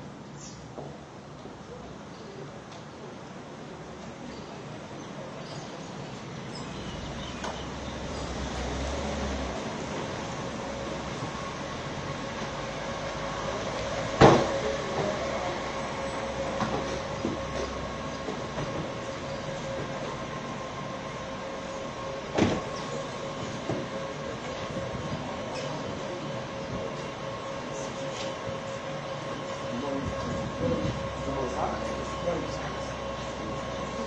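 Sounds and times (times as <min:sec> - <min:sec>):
vehicle engine rumbling: 0:06.0 - 0:34.0.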